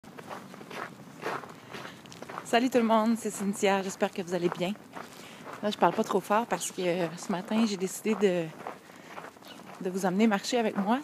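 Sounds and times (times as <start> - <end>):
footsteps walking: 0.1 - 11.0.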